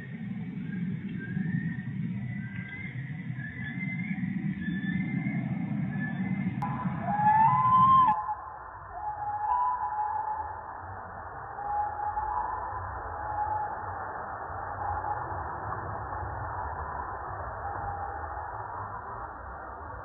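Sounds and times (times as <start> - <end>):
music: 6.2 - 10.9.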